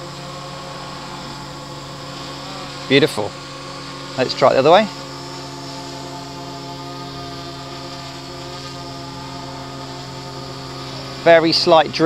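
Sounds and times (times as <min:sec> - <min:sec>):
drone propellers buzzing: 0:00.0 - 0:12.0.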